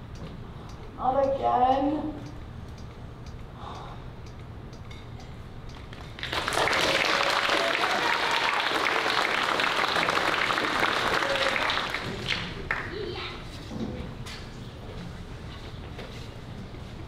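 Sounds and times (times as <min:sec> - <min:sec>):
audience applauding: 0:06.2 - 0:13.0.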